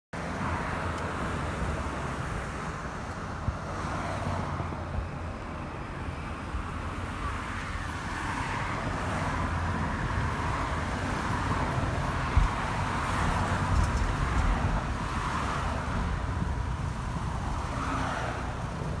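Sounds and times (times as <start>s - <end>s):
tyre and wind road noise: 0.1s - 19.0s
passing traffic: 0.2s - 19.0s.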